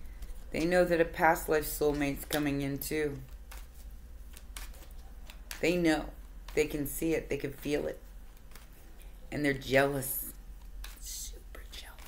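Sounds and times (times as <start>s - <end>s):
low steady hum: 0.0s - 12.0s
cards being shuffled: 1.4s - 9.2s, 10.5s - 12.0s.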